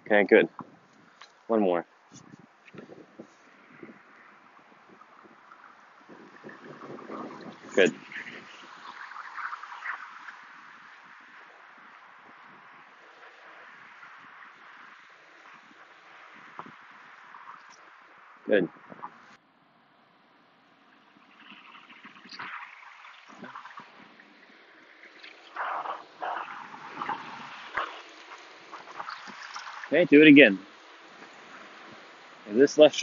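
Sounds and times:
light wind on microphone: 0.4 - 19.4.

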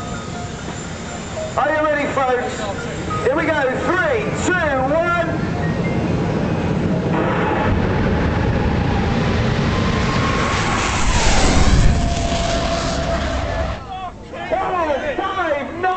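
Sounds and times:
jet car engine roaring: 0.0 - 15.8.

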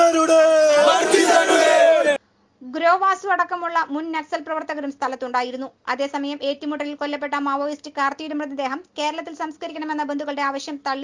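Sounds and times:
crowd of men shouting slogans: 0.0 - 2.2
man speaking: 0.0 - 2.2.

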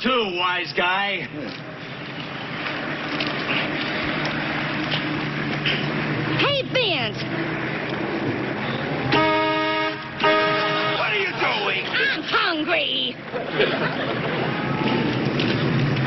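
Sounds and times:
street noise: 0.0 - 16.0
car horn held note: 9.2 - 11.0.

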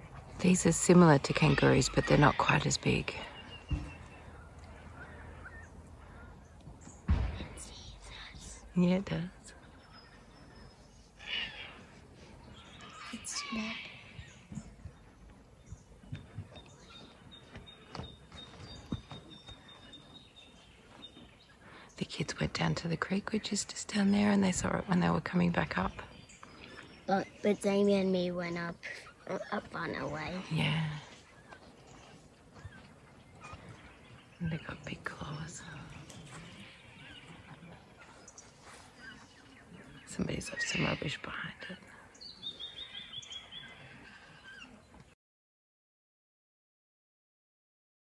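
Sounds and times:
faint bird chirps: 0.9 - 22.1.

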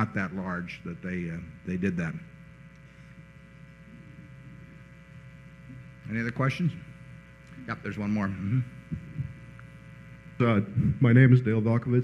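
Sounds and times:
man speaking into a microphone: 0.0 - 2.3, 10.4 - 12.0
electrical mains hum: 0.0 - 12.0.

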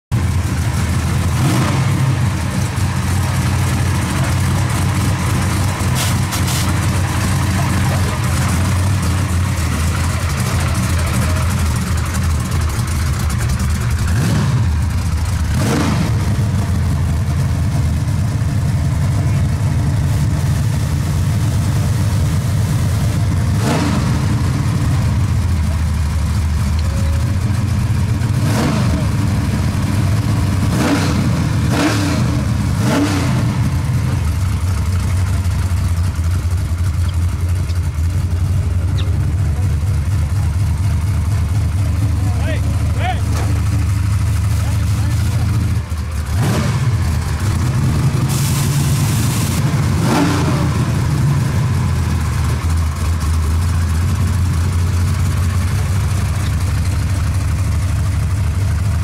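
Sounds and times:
car engine idling and revving: 0.1 - 59.0.

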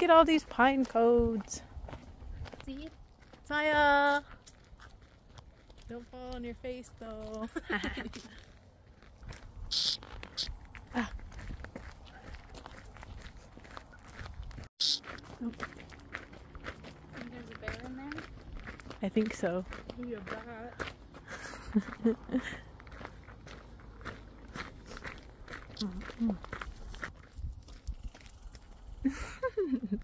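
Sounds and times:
footsteps on dirt trail: 0.0 - 29.5.

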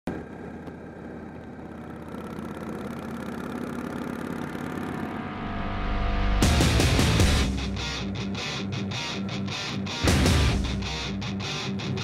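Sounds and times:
motorcycle engine running: 0.1 - 5.8.

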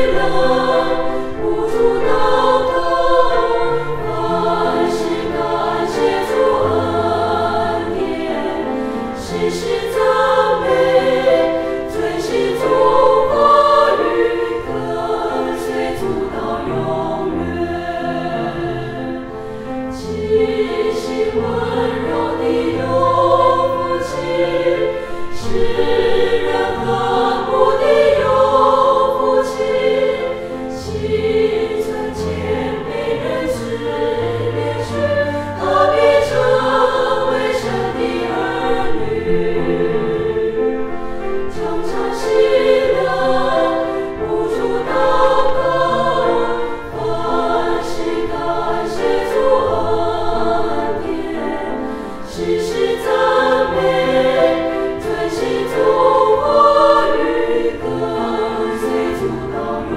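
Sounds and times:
women's choir singing a hymn: 0.0 - 59.9.

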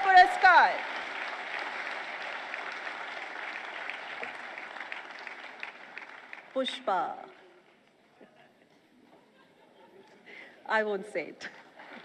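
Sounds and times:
audience applauding: 0.0 - 7.8.

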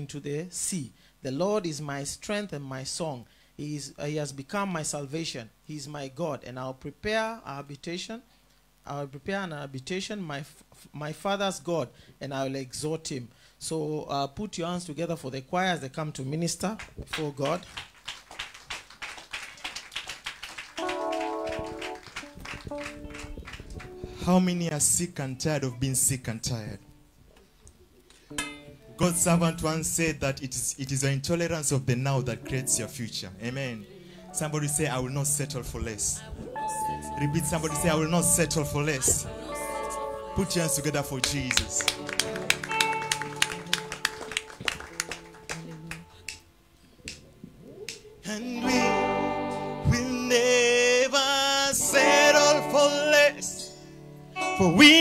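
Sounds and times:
congregation clapping: 16.8 - 24.3, 40.4 - 46.4
band playing: 20.7 - 24.7, 28.3 - 30.2, 32.2 - 46.3, 51.8 - 55.0
sustained keyboard chords: 20.8 - 24.9, 28.3 - 30.5, 31.7 - 46.6, 51.6 - 55.0.

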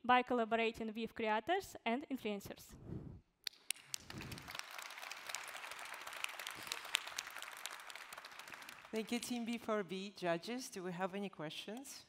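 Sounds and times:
audience applauding: 3.6 - 9.4.

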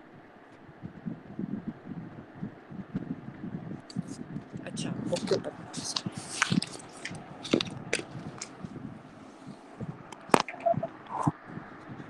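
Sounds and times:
paper pages rustling: 5.2 - 8.6.

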